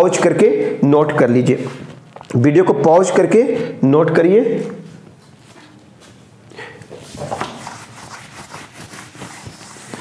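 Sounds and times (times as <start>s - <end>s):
duster rubbing on whiteboard: 7.0s - 10.0s.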